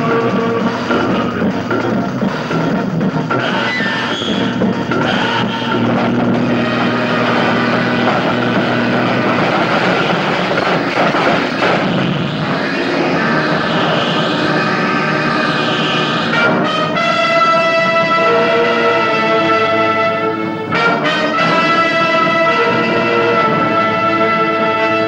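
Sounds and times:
background music: 0.0s - 25.0s.

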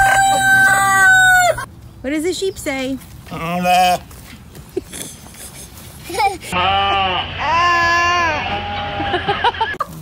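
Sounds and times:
rooster crowing: 0.0s - 1.7s.

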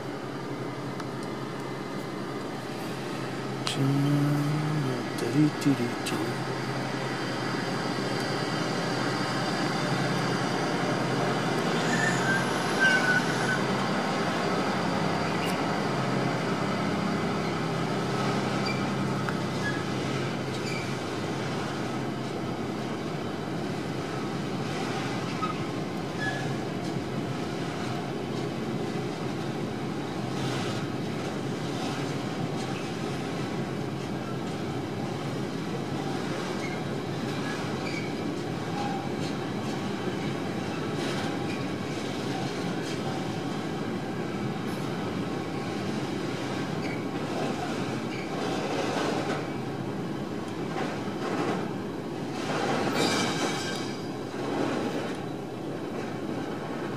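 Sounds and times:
train wheels rolling on rails: 6.4s - 56.9s.

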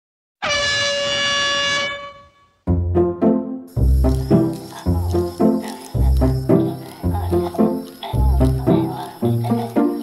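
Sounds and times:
horn blast: 0.4s - 2.8s.

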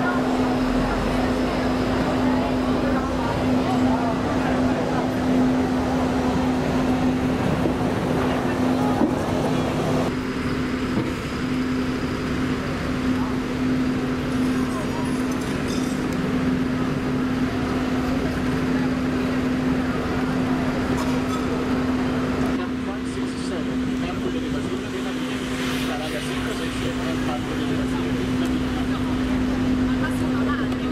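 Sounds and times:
bus engine low hum: 0.0s - 30.9s
road and traffic noise: 0.0s - 30.9s.

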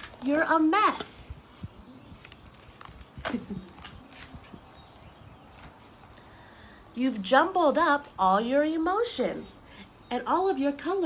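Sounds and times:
stiff paper pages rustling: 2.0s - 6.2s.

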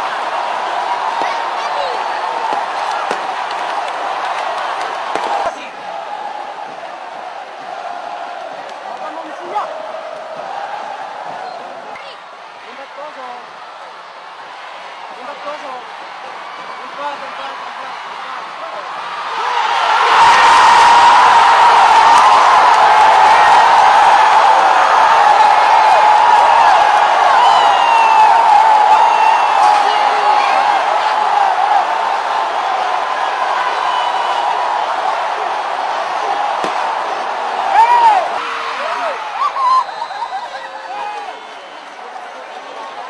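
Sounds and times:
stadium crowd cheering and shouting: 0.0s - 43.0s.

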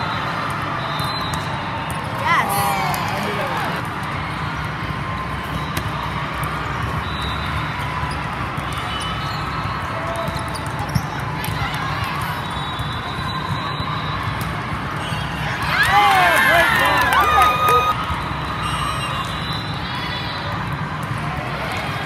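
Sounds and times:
volleyball hits: 5.4s - 9.0s.

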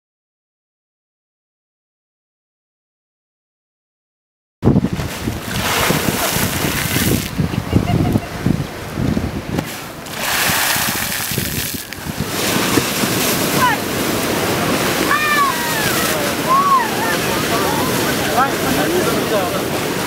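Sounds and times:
wind buffeting microphone: 4.6s - 20.0s
waves splashing against rocks: 4.7s - 20.0s.

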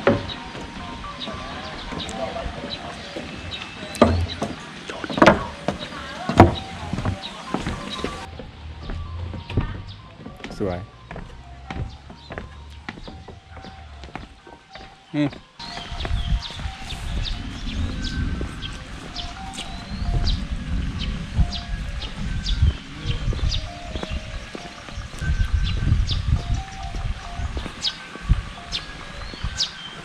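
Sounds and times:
background music of melodic notes: 0.0s - 30.0s
birds chirping: 0.0s - 30.0s
low rumble on microphone: 15.7s - 29.6s.

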